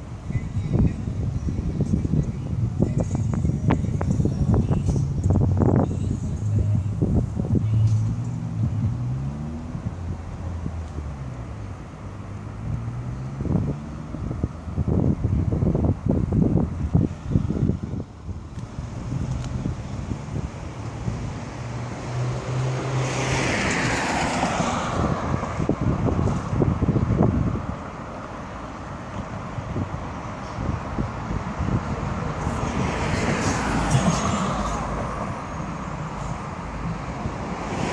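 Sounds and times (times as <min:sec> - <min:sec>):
wind on microphone: 0:00.2 - 0:09.0, 0:12.7 - 0:28.2, 0:28.9 - 0:35.4
car driving away: 0:04.9 - 0:37.9
car engine accelerating past: 0:07.7 - 0:15.0, 0:20.7 - 0:25.6.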